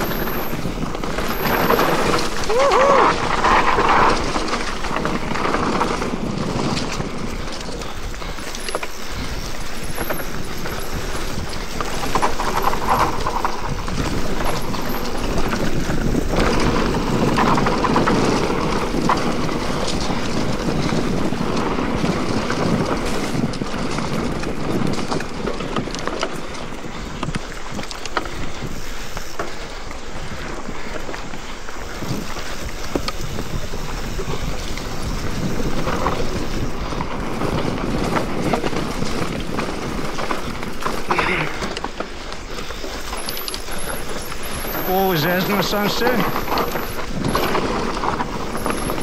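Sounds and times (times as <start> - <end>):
bike rattling and clicking: 0.0 - 49.0
bike tyres rolling on dirt: 0.0 - 49.0
wind noise on microphone: 0.0 - 49.0.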